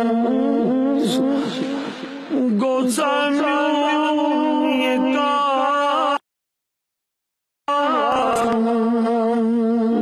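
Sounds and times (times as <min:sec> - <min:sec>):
man chanting over public address: 0:00.7 - 0:06.2, 0:07.7 - 0:10.0.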